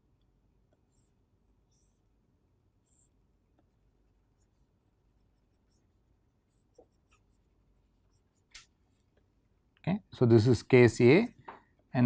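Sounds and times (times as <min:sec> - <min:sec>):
stylus scratching on pen tablet: 0:00.7 - 0:08.5.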